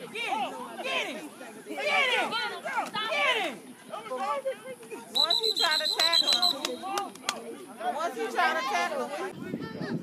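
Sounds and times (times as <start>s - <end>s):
spectators chattering and calling out: 0.0s - 10.0s.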